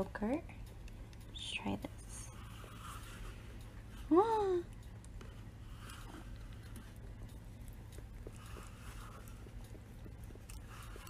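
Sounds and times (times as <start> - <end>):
light ticks: 0.0 - 11.0
lint roller rustling on fur: 1.9 - 4.2, 5.2 - 11.0.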